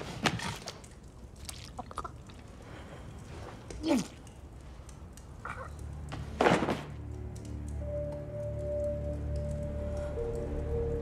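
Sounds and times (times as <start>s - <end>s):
slow film score: 0.0s - 11.0s.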